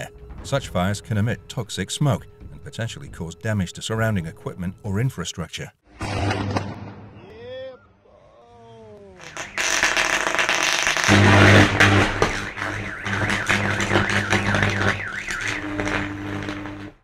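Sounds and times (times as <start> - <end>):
electrical arcing buzz and crackle: 9.2 - 17.0.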